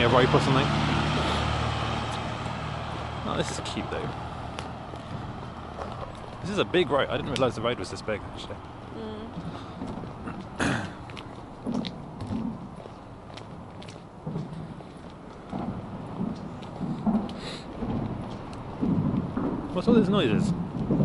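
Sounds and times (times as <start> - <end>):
vehicles thudding over overpass: 0.0 - 21.0.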